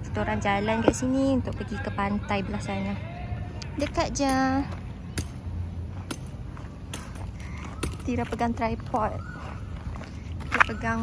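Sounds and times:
footsteps on pavement: 3.6 - 11.0.

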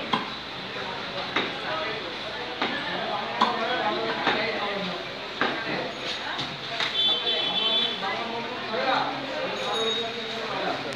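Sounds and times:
murmur of voices: 0.0 - 10.9.

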